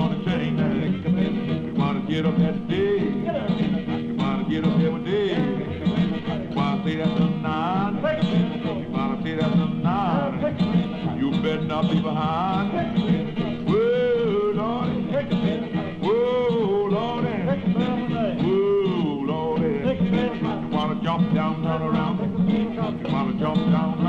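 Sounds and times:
blues harmonica with bent notes: 0:00.0 - 0:24.0
strummed guitar backing: 0:00.0 - 0:24.0.

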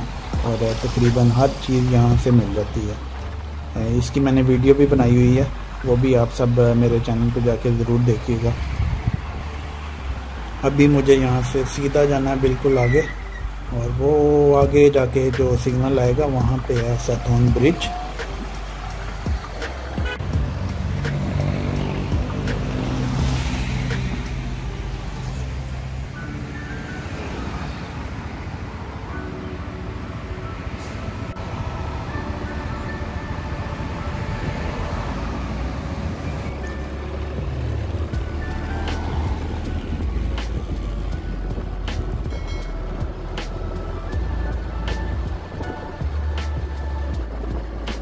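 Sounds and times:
background music: 0:00.0 - 0:48.0
road noise: 0:00.0 - 0:48.0.

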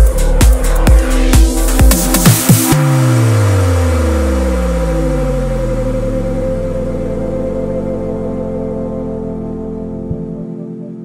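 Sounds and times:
deep synth bass gliding down: 0:00.0 - 0:11.0.

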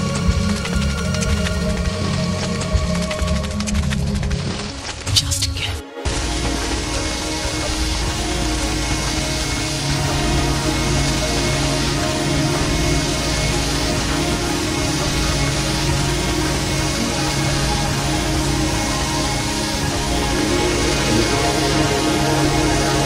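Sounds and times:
electronic drone music: 0:05.8 - 0:23.0.

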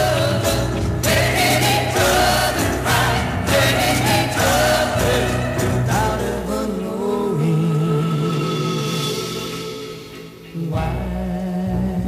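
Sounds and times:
backing vocal chorus singing: 0:00.0 - 0:12.0
pop ballad with orchestra and bass: 0:00.0 - 0:12.0.

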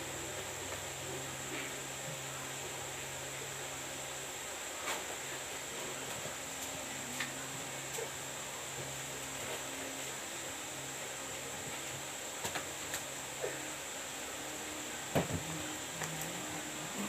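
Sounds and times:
background hum and hiss: 0:00.0 - 0:17.0
faint high whine: 0:00.0 - 0:17.0
knock of goods on shelves: 0:15.2 - 0:15.5.

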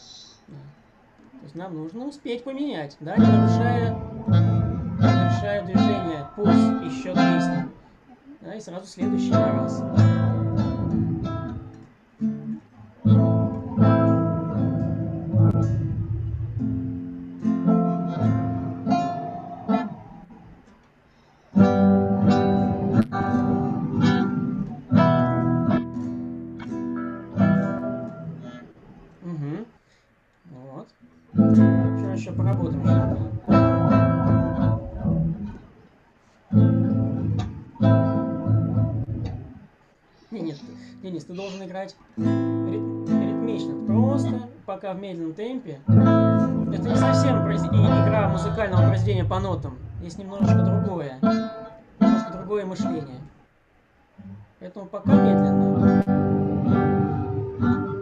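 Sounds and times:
acoustic guitar strumming: 0:03.1 - 0:07.9, 0:09.0 - 0:20.7, 0:21.4 - 0:29.0, 0:31.2 - 0:44.6, 0:45.8 - 0:53.2, 0:54.2 - 0:58.0.

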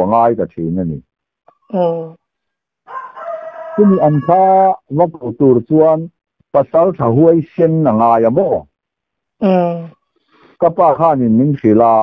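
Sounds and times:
person speaking: 0:00.0 - 0:01.0, 0:01.7 - 0:02.2, 0:03.8 - 0:08.6, 0:09.4 - 0:09.9, 0:10.5 - 0:12.0
rooster crowing: 0:02.8 - 0:04.8.

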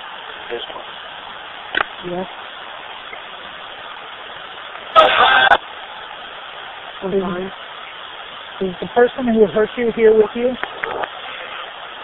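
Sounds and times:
radio static hiss: 0:00.0 - 0:12.0.

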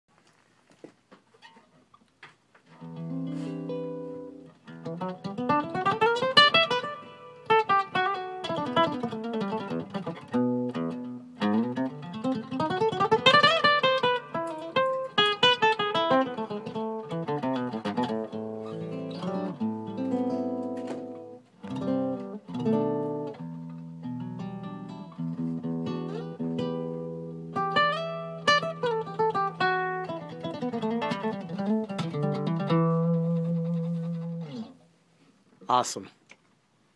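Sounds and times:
classical guitar playing: 0:02.7 - 0:35.0.

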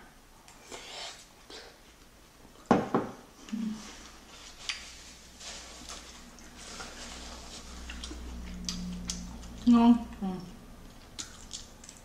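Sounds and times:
chewing and mouth sounds: 0:04.0 - 0:05.1, 0:05.8 - 0:12.0.

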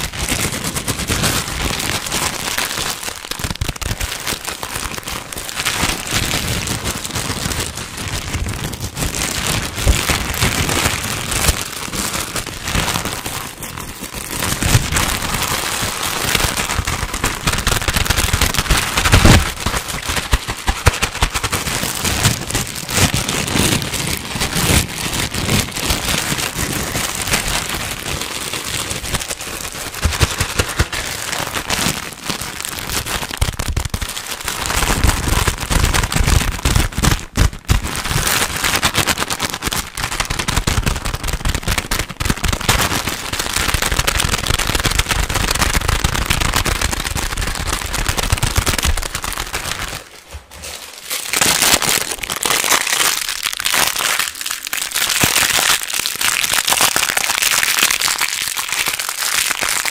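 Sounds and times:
plastic packaging crinkling: 0:00.0 - 0:59.9.

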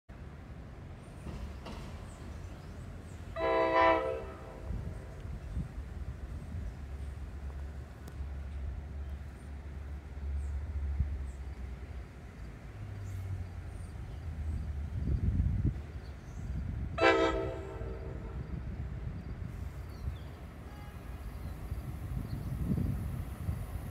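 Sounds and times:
train horn blast: 0:03.4 - 0:05.1, 0:17.0 - 0:18.5, 0:20.5 - 0:21.4.

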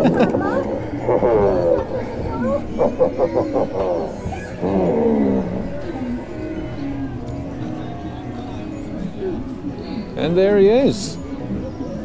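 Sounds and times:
ride music: 0:00.0 - 0:12.0
gruff animal-like voice: 0:00.4 - 0:06.8.

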